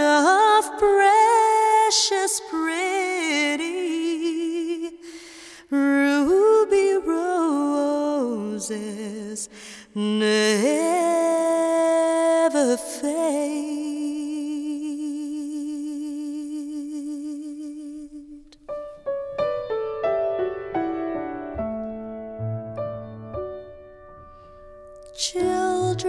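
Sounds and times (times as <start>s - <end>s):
woman singing: 0.0s - 18.6s, 25.1s - 26.0s.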